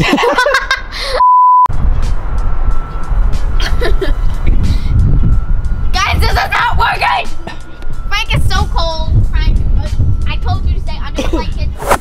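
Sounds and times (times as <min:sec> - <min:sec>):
heavy street traffic rumble: 0:01.7 - 0:12.0.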